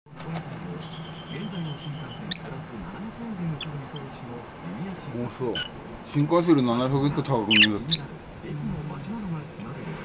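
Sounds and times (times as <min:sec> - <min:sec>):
low voice talking: 0:00.2 - 0:06.3
lovebirds chattering and chirping: 0:00.7 - 0:04.6, 0:05.5 - 0:05.8, 0:07.2 - 0:08.3.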